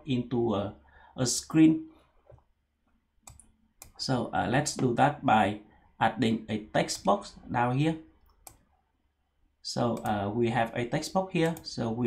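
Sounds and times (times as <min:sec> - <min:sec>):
computer mouse clicks: 0:03.2 - 0:04.0, 0:08.2 - 0:08.7, 0:10.0 - 0:10.2, 0:11.4 - 0:11.7.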